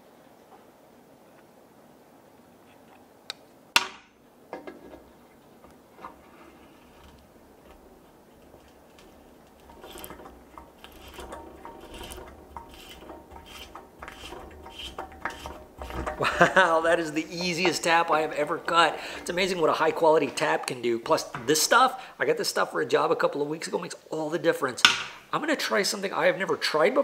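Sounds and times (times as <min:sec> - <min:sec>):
tap scraping metal threads: 0:04.5 - 0:21.6.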